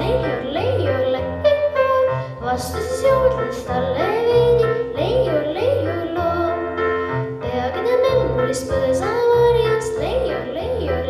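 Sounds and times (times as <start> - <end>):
girl singing into a microphone: 0.0 - 6.8, 7.4 - 11.0
instrumental accompaniment: 0.0 - 11.0.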